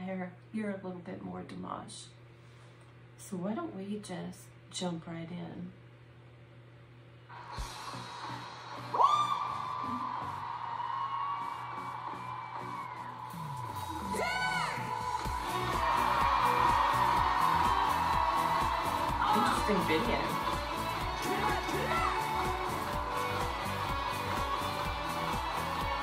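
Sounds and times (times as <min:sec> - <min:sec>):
audience cheering and whooping: 0:07.5 - 0:26.0
steady drum beat: 0:15.1 - 0:26.0.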